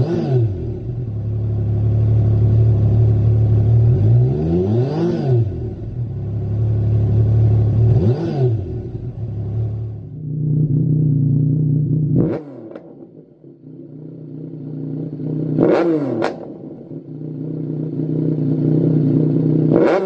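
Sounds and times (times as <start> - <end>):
motorcycle engine idling: 0.6 - 3.9, 5.5 - 8.0, 8.6 - 20.0.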